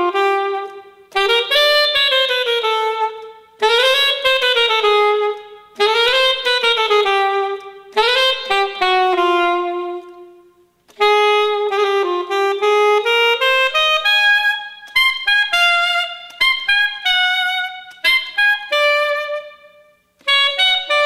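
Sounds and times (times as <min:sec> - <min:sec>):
solo saxophone playing: 0:00.0 - 0:21.0.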